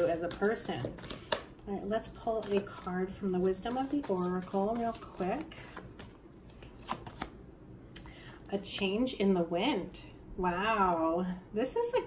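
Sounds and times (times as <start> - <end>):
cards rustling: 0.0 - 1.6, 2.2 - 7.4.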